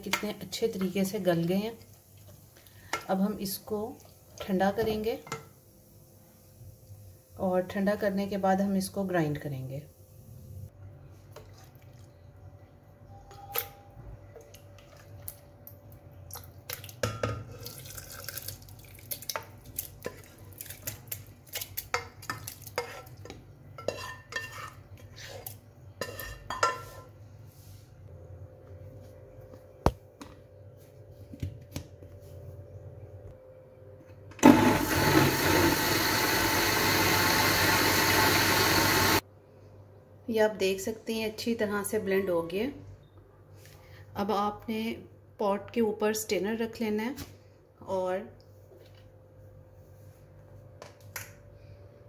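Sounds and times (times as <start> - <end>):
electric blender running: 34.4 - 39.2.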